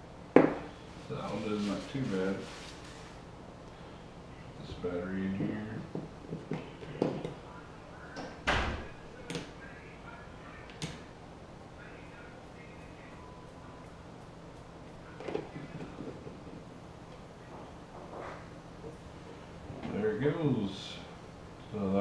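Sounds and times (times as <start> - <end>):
faint low hum: 0.0 - 22.0.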